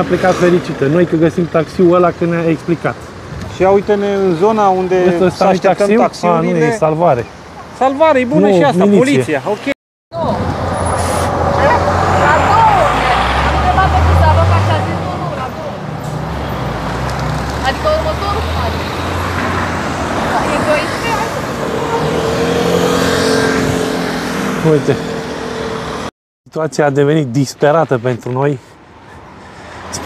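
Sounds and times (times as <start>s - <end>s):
street traffic: 0.0s - 30.0s
bus engine rumble: 10.1s - 22.3s.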